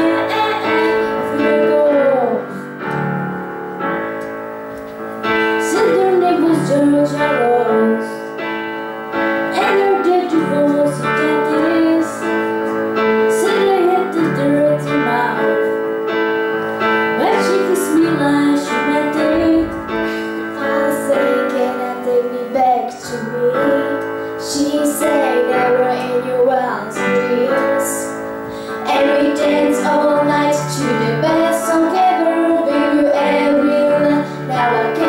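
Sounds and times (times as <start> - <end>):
girls singing pop song: 0.0 - 3.0, 5.4 - 8.3, 9.5 - 15.8, 17.1 - 35.0
instrumental accompaniment with chords: 0.0 - 35.0.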